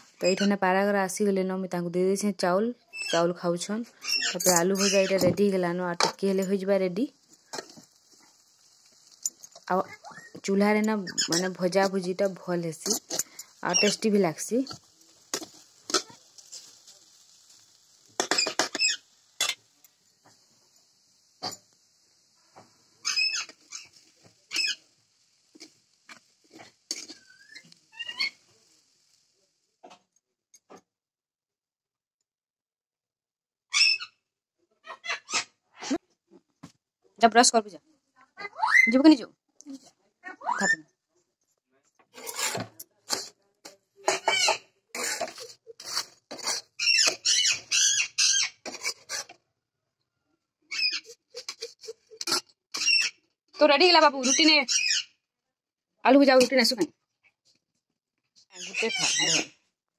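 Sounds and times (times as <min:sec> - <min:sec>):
parrot squawking: 0:27.2 - 0:28.4, 0:33.7 - 0:34.2, 0:46.8 - 0:48.6, 0:50.7 - 0:51.6, 0:52.2 - 0:53.2, 0:54.2 - 0:55.1, 0:58.6 - 0:59.5.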